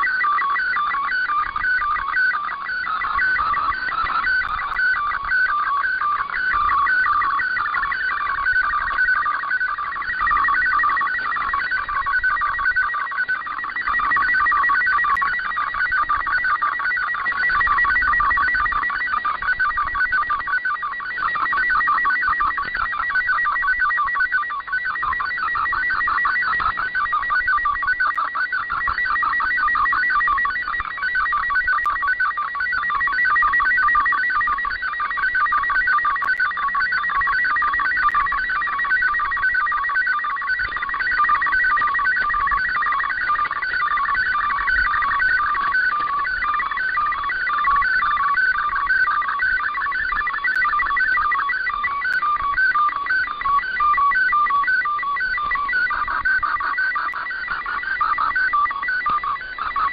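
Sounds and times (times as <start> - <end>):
warbling digital data tones: 0.0 - 59.9.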